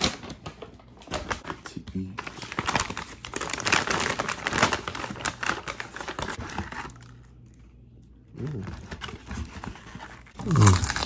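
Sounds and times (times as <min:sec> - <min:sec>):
paper packaging crinkling: 0:00.0 - 0:07.6, 0:08.4 - 0:11.0.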